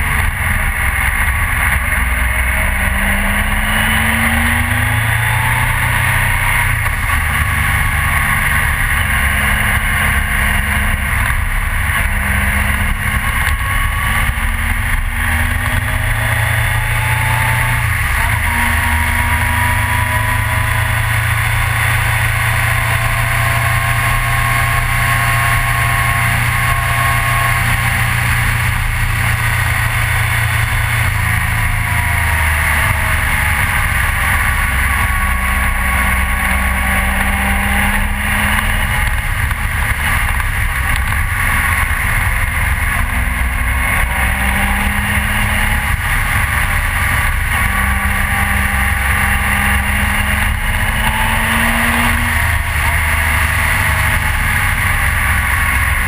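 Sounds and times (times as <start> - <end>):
motorcycle engine running: 0.0 - 56.0
wind and road noise: 0.0 - 56.0.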